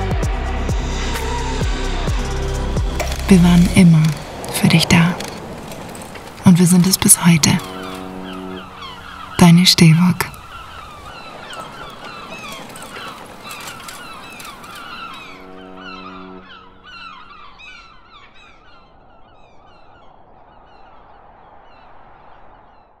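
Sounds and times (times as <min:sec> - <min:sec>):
flock of birds calling: 0:01.2 - 0:22.6.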